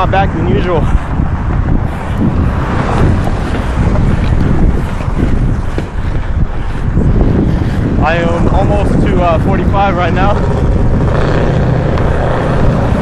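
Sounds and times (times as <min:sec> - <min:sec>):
skate wheels rolling on concrete: 0:00.0 - 0:13.0
wind buffeting microphone: 0:00.0 - 0:13.0.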